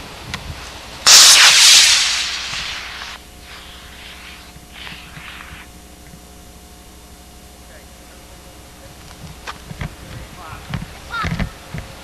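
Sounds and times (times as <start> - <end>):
model rocket launching hiss: 1.0 - 5.8.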